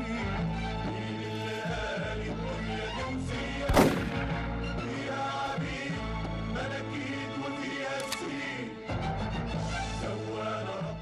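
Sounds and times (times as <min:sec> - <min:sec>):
background music: 0:00.0 - 0:11.0
rifle shot: 0:03.7 - 0:04.6.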